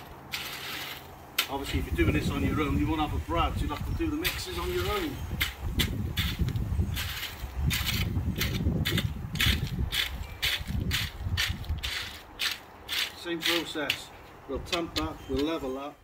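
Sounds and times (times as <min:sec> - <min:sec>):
rake scraping wet concrete mix: 0:00.0 - 0:16.0.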